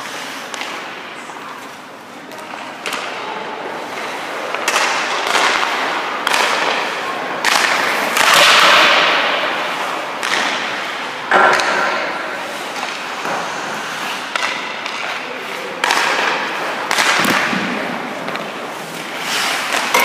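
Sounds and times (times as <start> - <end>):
ice skate blades scraping ice: 12.4 - 15.2, 18.2 - 20.0.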